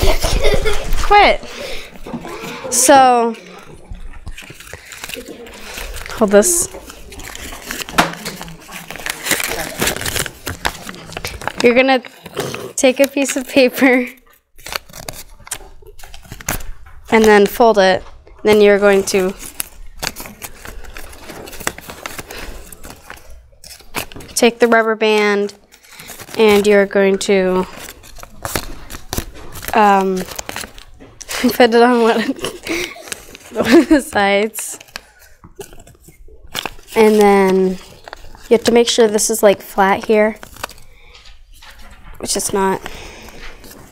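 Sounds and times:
paper crackling being folded: 0:00.0 - 0:43.9.

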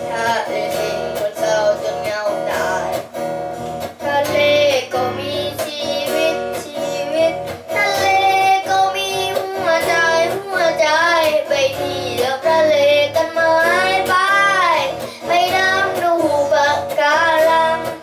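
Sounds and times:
boy singing: 0:00.0 - 0:03.2, 0:03.8 - 0:18.0
electric guitar strumming: 0:00.0 - 0:18.0.

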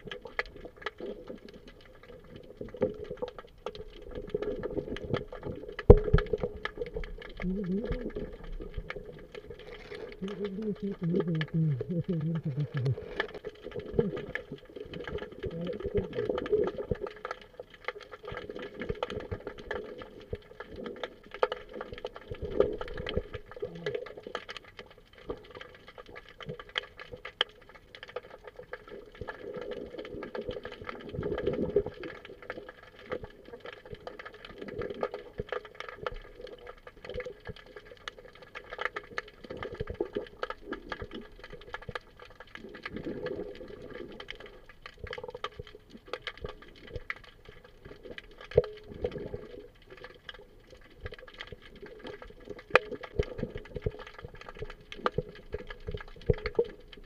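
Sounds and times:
crackling clicks: 0:00.0 - 0:57.0
muffled underwater water movement: 0:00.0 - 0:57.0
faint steady hum: 0:03.5 - 0:16.8.

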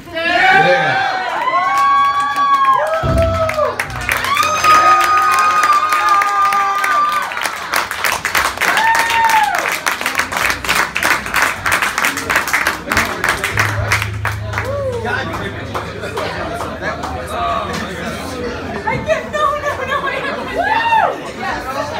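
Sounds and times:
crowd clapping and cheering: 0:00.4 - 0:18.5.

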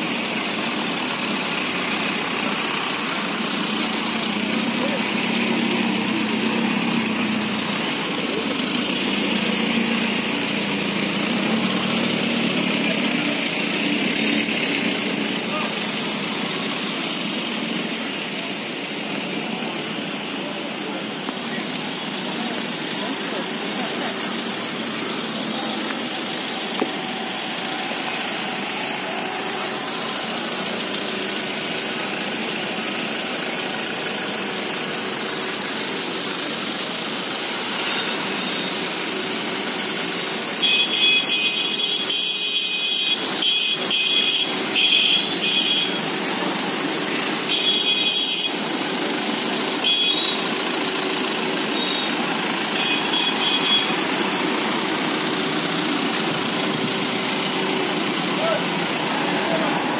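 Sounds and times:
cars and motorcycles driving past: 0:00.0 - 0:42.0, 0:42.8 - 0:59.9.

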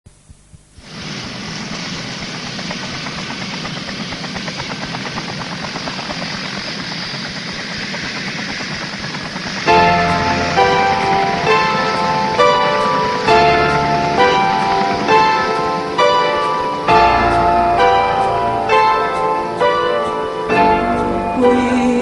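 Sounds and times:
helicopter rotor chopping: 0:00.2 - 0:22.0
keyboard notes: 0:09.7 - 0:22.0.

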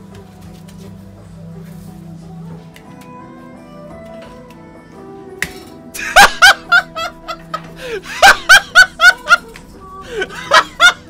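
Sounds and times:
faint background music: 0:00.0 - 0:11.0
man laughing hard: 0:06.0 - 0:09.5, 0:10.1 - 0:11.0.

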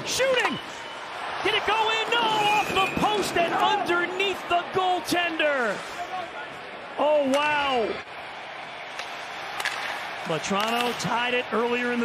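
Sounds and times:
faint arena background noise: 0:00.0 - 0:12.0
male commentator exclaiming: 0:01.4 - 0:08.0, 0:10.3 - 0:12.0.

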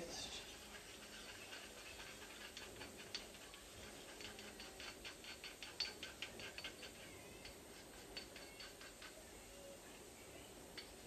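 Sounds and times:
utensil ticking against ceramic cup: 0:00.4 - 0:09.3.

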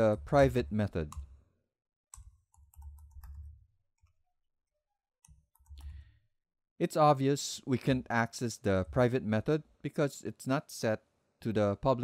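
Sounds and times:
computer keyboard keystrokes: 0:02.1 - 0:04.2, 0:05.2 - 0:05.9.

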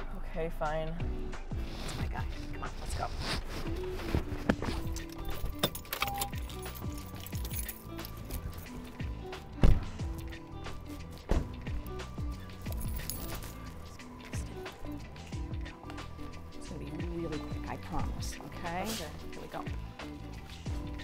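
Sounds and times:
background music with bass line: 0:00.0 - 0:21.0
sharp loud thump: 0:09.6 - 0:10.0, 0:11.3 - 0:11.6.

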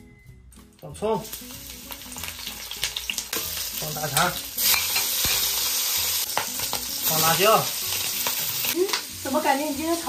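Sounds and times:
scallions sizzling in hot oil: 0:01.0 - 0:10.0.

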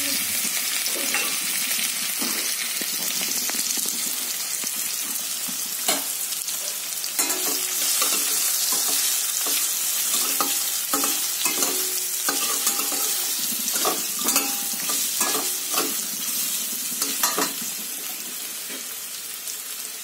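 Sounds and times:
pumpkin frying in oil: 0:00.0 - 0:20.0.

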